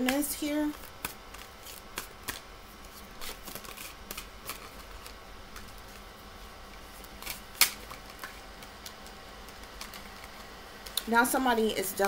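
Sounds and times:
cards clicking and snapping: 0:00.0 - 0:02.5, 0:07.2 - 0:11.1.

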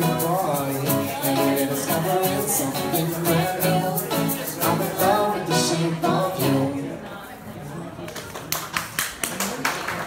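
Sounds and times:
faint acoustic guitar: 0:00.0 - 0:07.5
sharp hand claps: 0:08.1 - 0:10.0.

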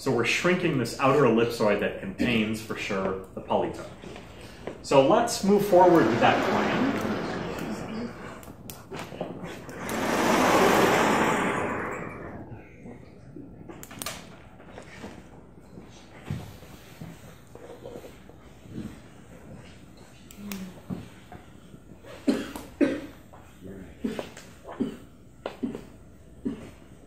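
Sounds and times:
chalkboard panels rolling rumble: 0:05.4 - 0:08.4, 0:09.7 - 0:12.4.

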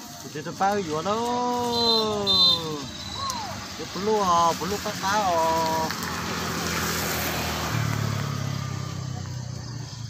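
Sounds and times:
vehicle engine droning: 0:02.6 - 0:10.0.

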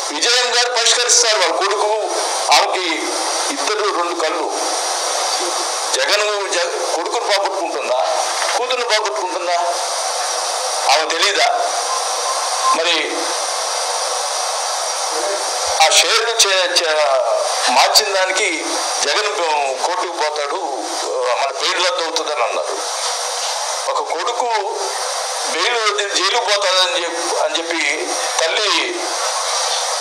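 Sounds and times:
steady loud hiss: 0:00.0 - 0:30.0
person speaking: 0:00.1 - 0:09.9, 0:10.7 - 0:13.6, 0:15.0 - 0:22.9.

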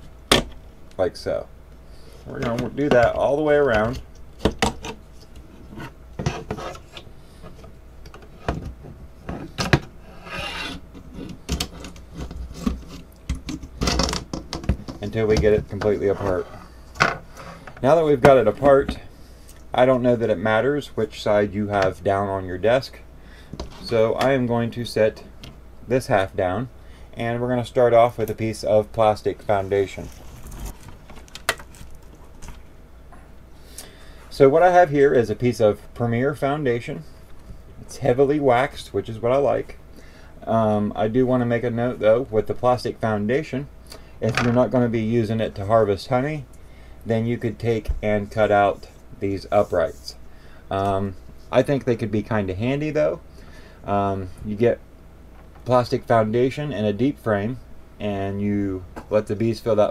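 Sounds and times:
low room hum: 0:00.0 - 0:59.9
metal tool scraping plastic: 0:05.6 - 0:07.0, 0:10.1 - 0:14.3.

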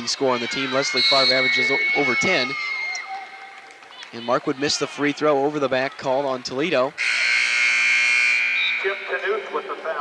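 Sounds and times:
scoreboard buzzer blast: 0:07.0 - 0:09.1.

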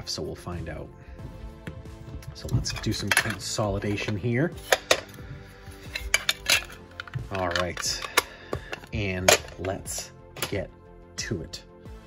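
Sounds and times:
faint background music: 0:00.0 - 0:12.0
plastic cases clacking together: 0:02.3 - 0:10.6.

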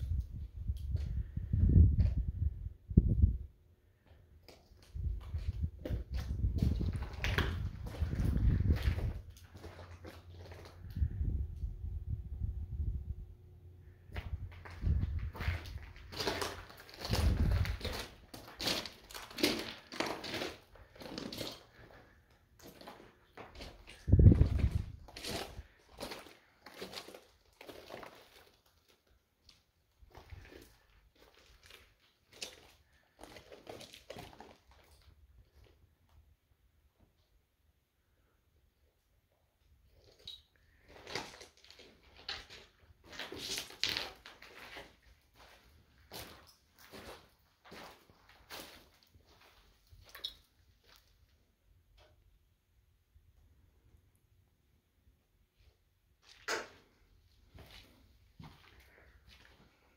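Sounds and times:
footsteps crunching on gravel: 0:05.0 - 0:10.8, 0:14.2 - 0:28.6, 0:40.8 - 0:50.2.

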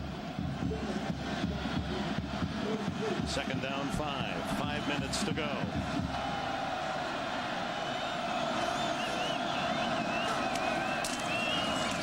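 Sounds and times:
stadium crowd roar: 0:00.0 - 0:12.0
high wavering whistles: 0:08.3 - 0:12.0.

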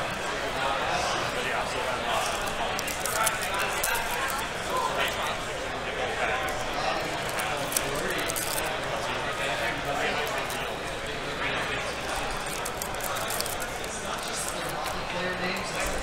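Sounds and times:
crowd chatter in a hall: 0:00.0 - 0:16.0
foil wrappers crinkling and tearing: 0:02.1 - 0:16.0.

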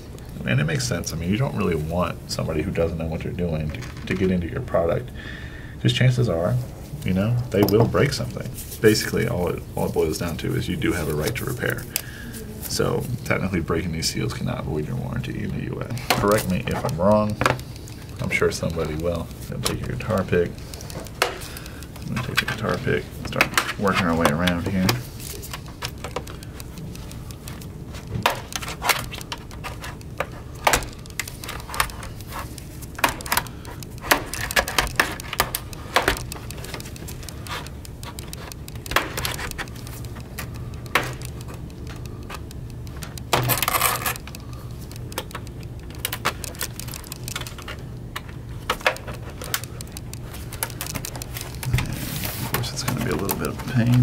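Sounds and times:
plastic clips clicking and popping: 0:15.9 - 0:51.8.

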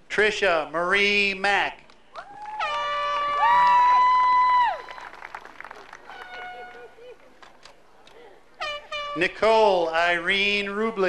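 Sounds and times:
faint crowd voices: 0:05.4 - 0:10.9
air horn blast: 0:08.6 - 0:09.4.

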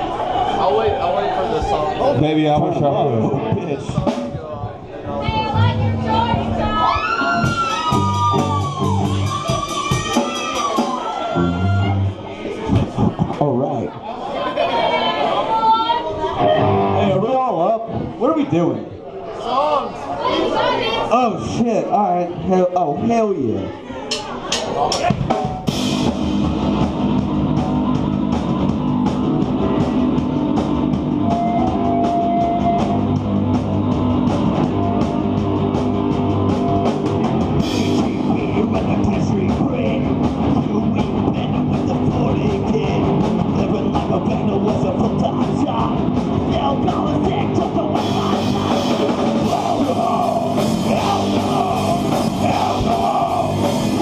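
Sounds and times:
live rock band playing: 0:03.0 - 0:04.4, 0:05.3 - 0:12.2, 0:16.4 - 0:17.3, 0:25.0 - 0:54.0.

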